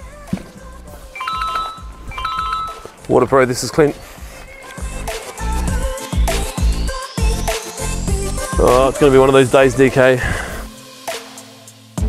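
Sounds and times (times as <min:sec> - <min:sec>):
mobile phone ringtone: 0:01.2 - 0:03.0.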